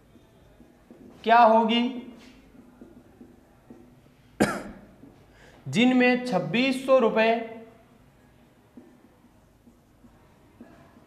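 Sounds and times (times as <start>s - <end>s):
man coughing: 4.4s - 4.9s.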